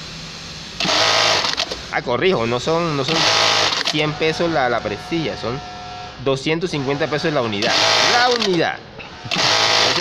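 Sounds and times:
rapid machine stitching: 0:00.8 - 0:01.7, 0:03.0 - 0:04.1, 0:06.8 - 0:10.0
sewing machine humming: 0:00.8 - 0:01.8, 0:03.0 - 0:04.6, 0:05.5 - 0:10.0.

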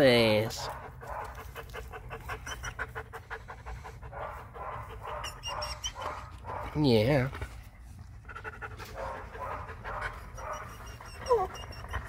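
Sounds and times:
dog panting: 0:00.1 - 0:12.0.

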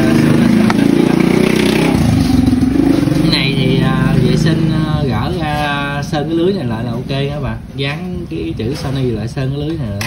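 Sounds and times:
engine running: 0:00.0 - 0:05.8.

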